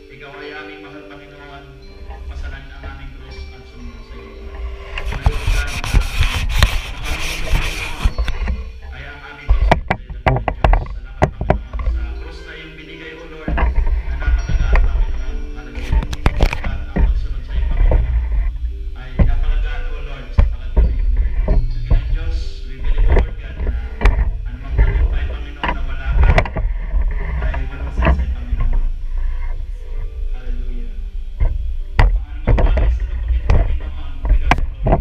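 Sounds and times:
worship band playing: 0.0s - 35.0s.

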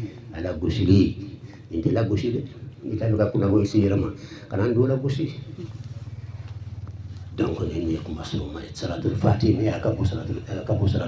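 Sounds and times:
man talking: 0.0s - 5.7s, 7.4s - 11.0s
low pulsing engine-like hum: 0.0s - 11.0s.

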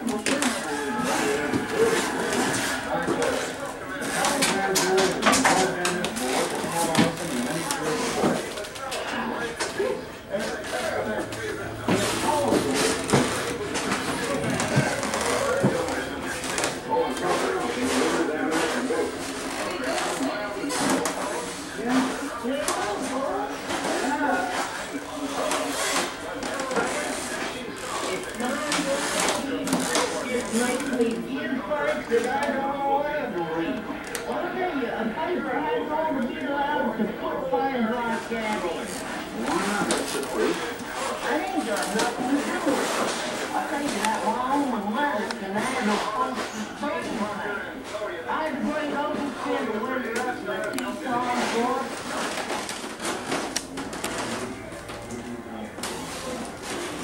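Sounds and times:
indistinct voices talking: 0.0s - 57.0s.

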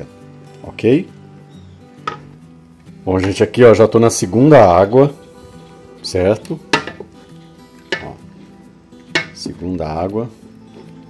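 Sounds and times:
soft background music: 0.0s - 11.0s
spoon knocking against metal pot: 2.0s - 2.3s, 6.7s - 7.1s, 7.9s - 8.2s, 9.1s - 9.4s.

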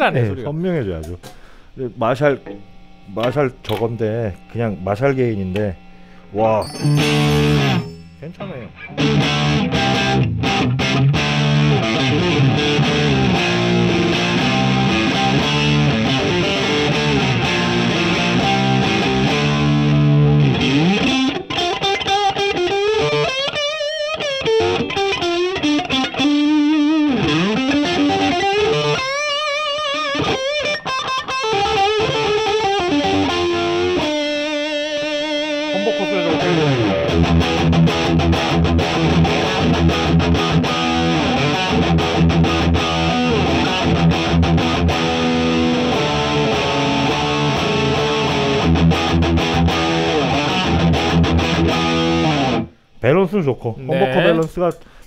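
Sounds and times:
distorted electric guitar: 1.9s - 52.8s.

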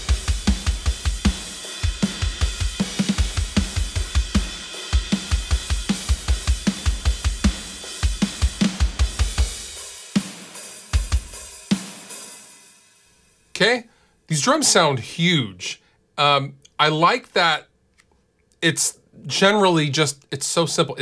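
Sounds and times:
metal drum kit playing: 0.0s - 12.7s.

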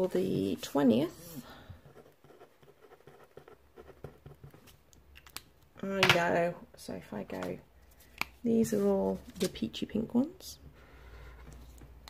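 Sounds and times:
pencil writing on paper: 1.2s - 4.6s.

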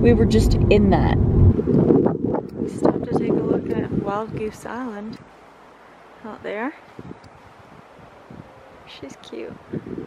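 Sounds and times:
wind rumbling on microphone: 0.0s - 10.0s
faint steady hiss: 2.5s - 10.0s.

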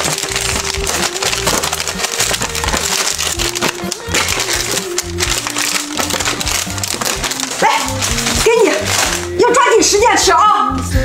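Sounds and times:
steady crackle: 0.0s - 9.3s
plastic packets crinkling: 0.0s - 10.0s
background music: 0.0s - 11.0s.

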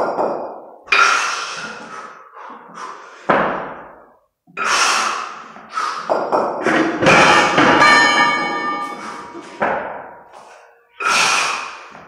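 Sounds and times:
heavy forceful breathing: 0.9s - 3.3s, 8.7s - 9.6s, 11.0s - 12.0s.

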